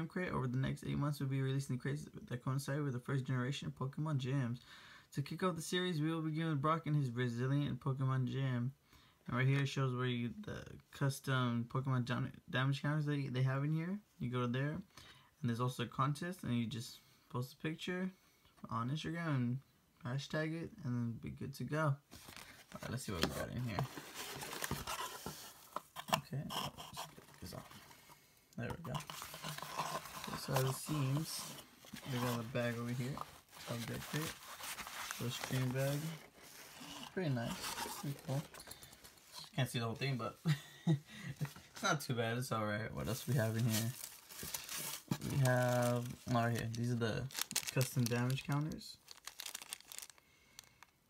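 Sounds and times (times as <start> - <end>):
fabric bag rustling: 28.9 - 39.3, 43.1 - 50.7
shredded paper rustling: 29.2 - 38.4, 43.1 - 50.7.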